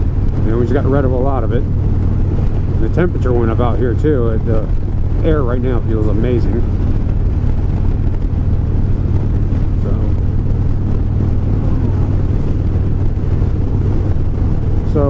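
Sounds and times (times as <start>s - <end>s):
motorcycle engine cruising: 0.0s - 15.0s
wind and road noise: 0.0s - 15.0s.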